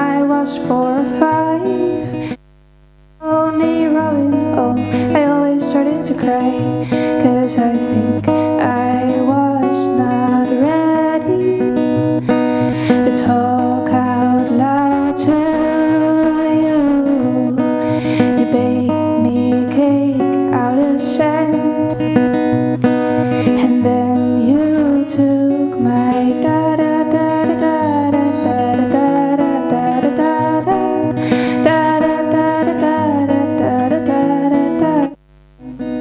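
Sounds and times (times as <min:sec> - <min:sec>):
acoustic guitar strumming: 0:00.0 - 0:02.4, 0:03.2 - 0:36.0.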